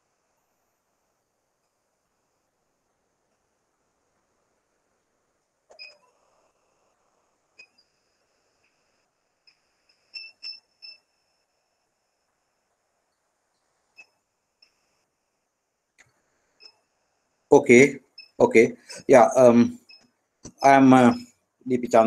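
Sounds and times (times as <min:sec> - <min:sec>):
low hiss: 0:00.0 - 0:22.0.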